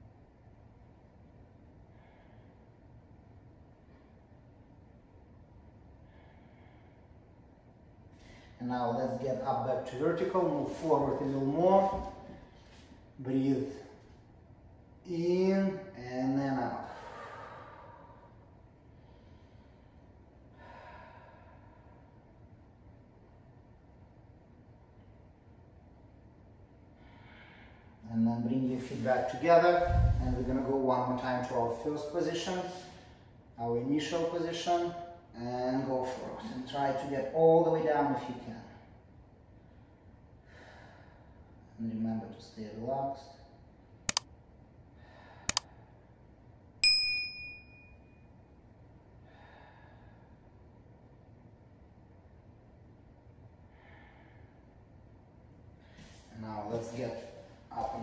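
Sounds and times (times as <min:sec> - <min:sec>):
person exhaling softly: 0:16.9 - 0:18.3
notification bell ding: 0:46.8 - 0:47.8.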